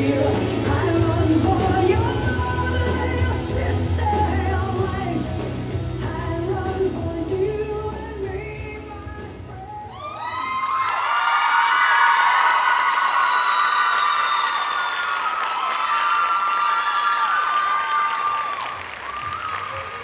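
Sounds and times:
audience applauding and cheering: 9.8s - 20.0s
high-pitched shrieks and whoops: 9.9s - 20.0s.

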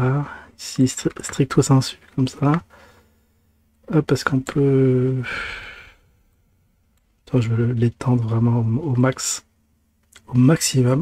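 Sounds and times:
man's voice: 3.9s - 5.5s
man sighing: 5.1s - 6.1s.

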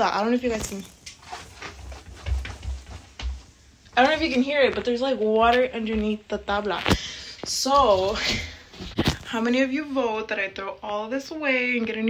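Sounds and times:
footsteps on laminate flooring: 0.5s - 6.7s.

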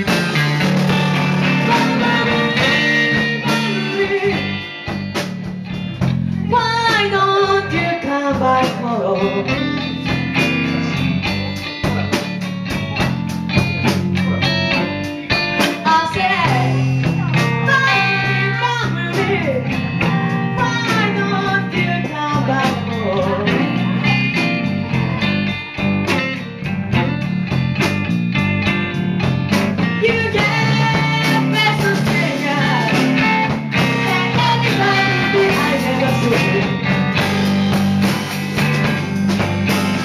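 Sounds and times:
drum kit with cymbal beat: 0.0s - 40.0s
electric guitar: 0.0s - 40.0s
woman singing: 1.2s - 4.8s, 6.3s - 10.0s, 15.6s - 24.5s, 29.9s - 37.4s.

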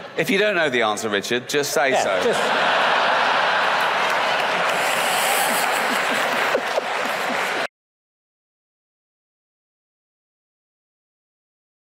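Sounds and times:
audience applauding: 2.5s - 7.7s.

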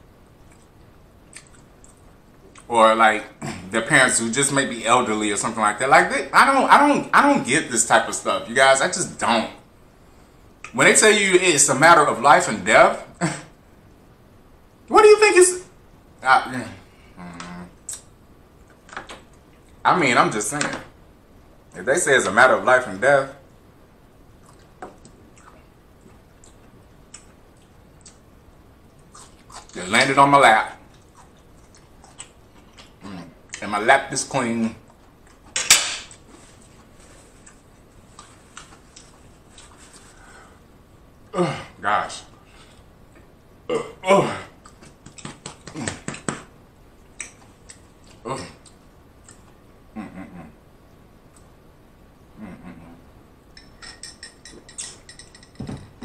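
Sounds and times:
quiet chewing clicks: 0.4s - 2.7s, 24.4s - 29.8s, 30.9s - 33.6s, 44.6s - 45.6s, 47.0s - 49.6s
man humming closed-mouth: 17.2s - 17.7s, 49.9s - 50.6s, 52.3s - 53.1s
man's wordless vocal sound: 52.4s - 53.1s.

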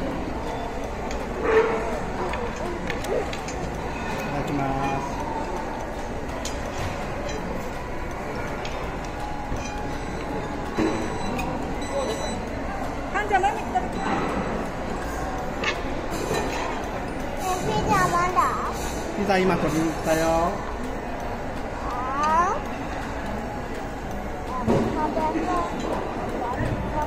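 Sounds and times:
restaurant pager going off: 0.0s - 17.7s
food court hubbub: 0.0s - 27.0s.

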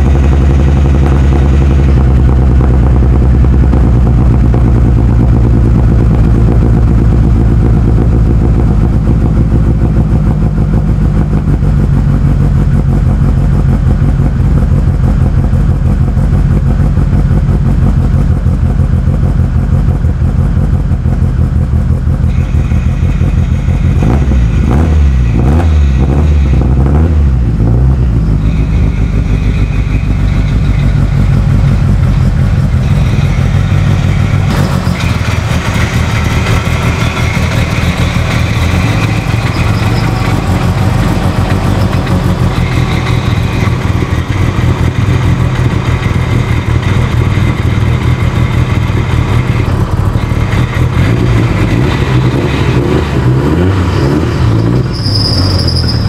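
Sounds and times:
car engine running loud: 0.0s - 56.0s.

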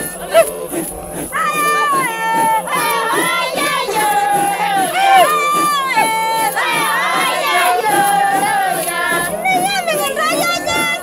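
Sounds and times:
high voices singing together: 0.0s - 11.0s.

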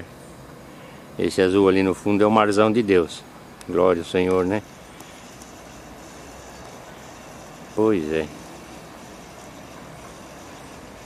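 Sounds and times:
faint outdoor rush: 0.0s - 11.0s.

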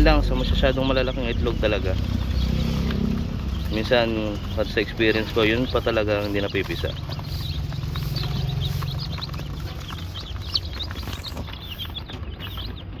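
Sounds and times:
chicks peeping: 0.0s - 13.0s.

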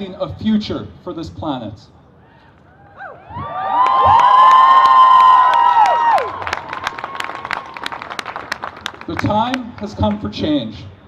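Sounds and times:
crowd cheering and whooping: 2.7s - 8.2s
clapping: 3.8s - 10.0s.

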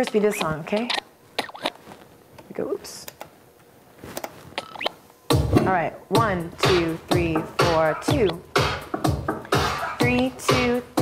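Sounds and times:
record scratching chirp: 0.0s - 1.9s, 4.5s - 5.0s, 6.6s - 8.6s, 9.5s - 10.8s.

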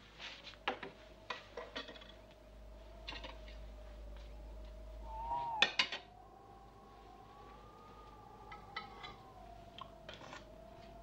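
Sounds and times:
high whistle-like tone: 5.0s - 6.2s.

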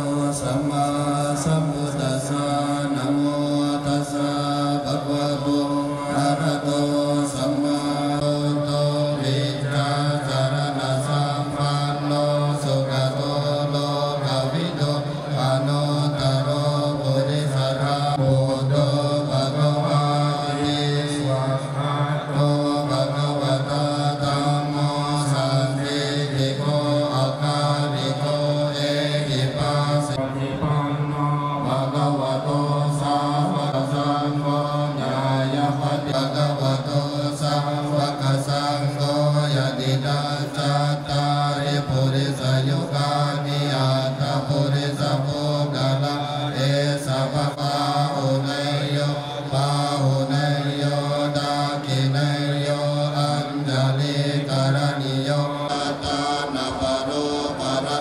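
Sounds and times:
monks chanting in unison: 0.0s - 58.0s.

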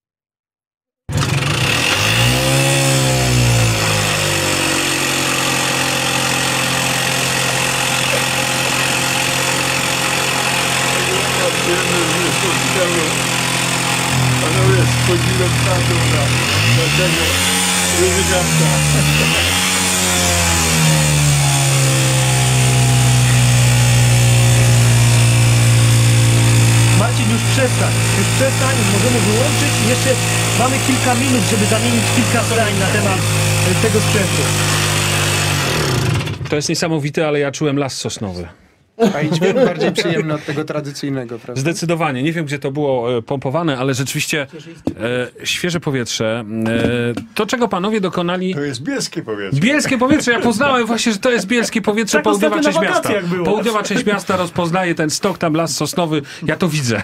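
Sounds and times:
moped motor revving: 1.1s - 36.6s.

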